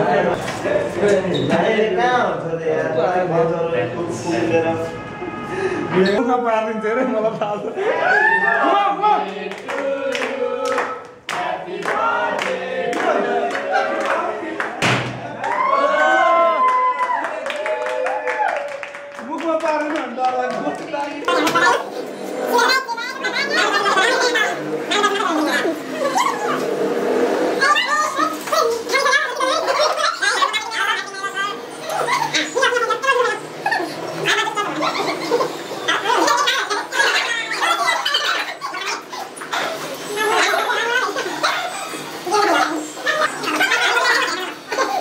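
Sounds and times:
people exclaiming: 0:07.8 - 0:09.3, 0:15.3 - 0:19.3, 0:22.5 - 0:26.7, 0:27.6 - 0:45.0
group of people singing: 0:08.6 - 0:14.9
hands clapping: 0:09.5 - 0:15.6, 0:16.6 - 0:21.6
people laughing: 0:23.0 - 0:26.9, 0:27.6 - 0:45.0.

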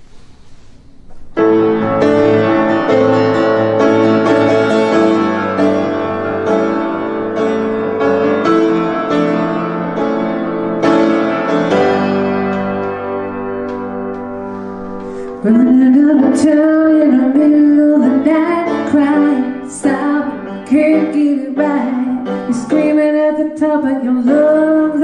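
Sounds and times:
solo piano blues chords: 0:01.1 - 0:25.0.

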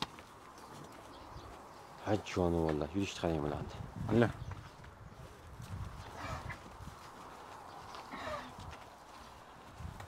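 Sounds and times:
hoof steps on dirt floor: 0:00.0 - 0:10.0.

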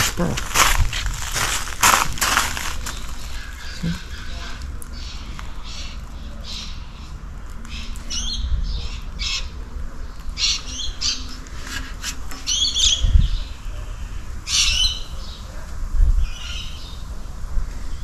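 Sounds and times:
low rumble: 0:00.0 - 0:11.4
small birds chirping: 0:00.0 - 0:17.2.

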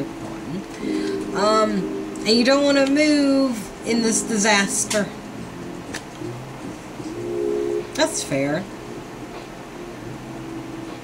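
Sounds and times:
soft sustained chord music: 0:00.0 - 0:11.0.

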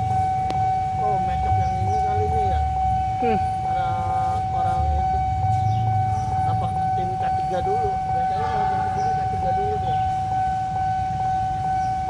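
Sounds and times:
level crossing alarm tone: 0:00.0 - 0:12.0.

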